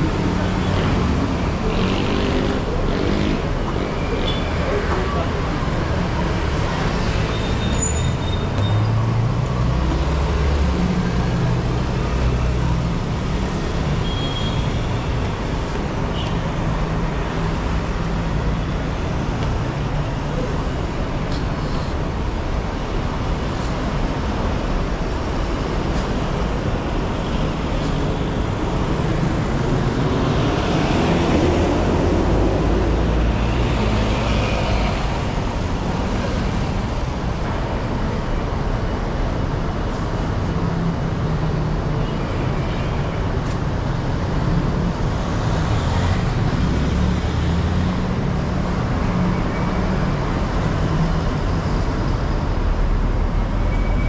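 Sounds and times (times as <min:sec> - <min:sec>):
cars and buses passing: 0:00.0 - 0:54.0
heavy vehicle engines: 0:00.0 - 0:54.0.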